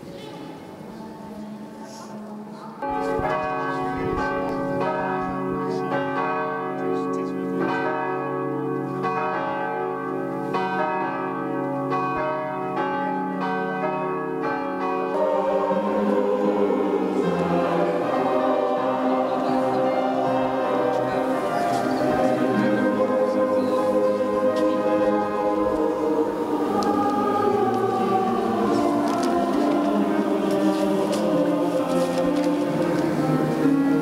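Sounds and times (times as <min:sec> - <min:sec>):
church bells ringing: 0:02.6 - 0:34.0
group singing: 0:15.1 - 0:34.0.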